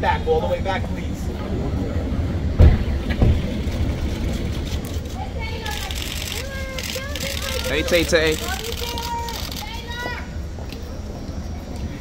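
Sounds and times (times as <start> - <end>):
city street rumble: 0.0 - 12.0
dull thumps: 2.6 - 3.7.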